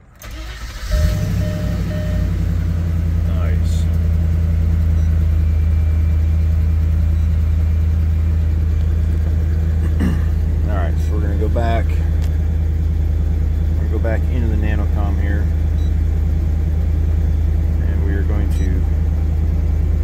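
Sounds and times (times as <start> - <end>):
car engine cranking and idling: 0.0 - 20.0.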